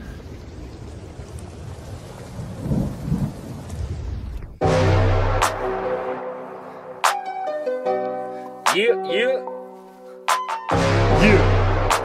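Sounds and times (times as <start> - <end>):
low rumbles of thunder: 0.0 - 4.8
steady rain hiss: 0.0 - 8.7.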